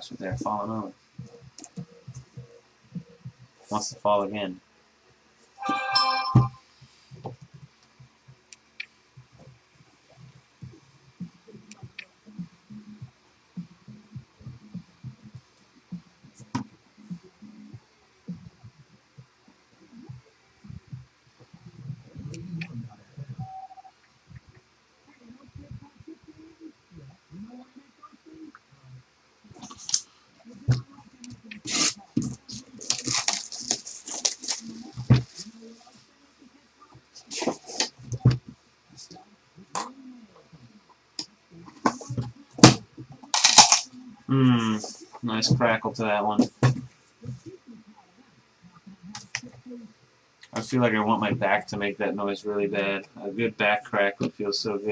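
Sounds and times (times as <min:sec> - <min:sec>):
sharp plastic crackles: 0:30.7 - 0:35.5, 0:41.9 - 0:43.9
packaging handling noises: 0:31.6 - 0:35.6, 0:42.6 - 0:43.9.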